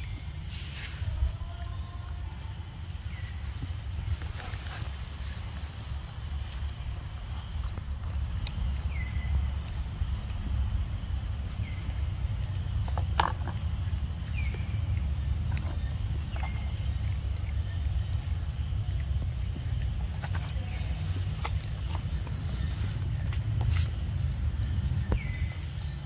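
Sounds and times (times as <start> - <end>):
wind rumble on microphone: 0.0 - 26.0.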